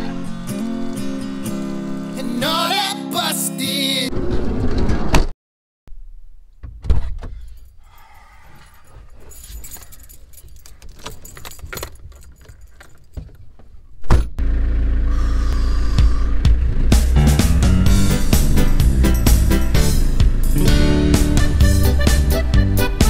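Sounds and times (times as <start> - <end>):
keys jangling: 7.4 - 13.6
van door handle: 9.7 - 14.3
van door shutting with a thump: 14.0 - 14.4.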